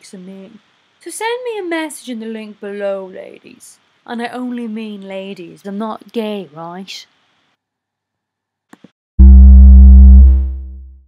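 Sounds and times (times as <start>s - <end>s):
electronic tone with heavy bass: 9.2s - 11.0s.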